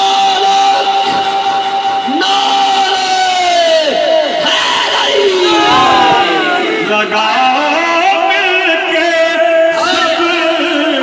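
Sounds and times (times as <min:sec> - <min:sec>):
layered background voices: 0:05.1 - 0:09.3.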